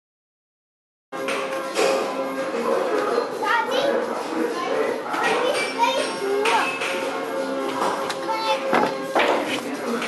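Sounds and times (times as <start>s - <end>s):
music playing: 1.2s - 10.0s
children chattering: 2.0s - 10.0s.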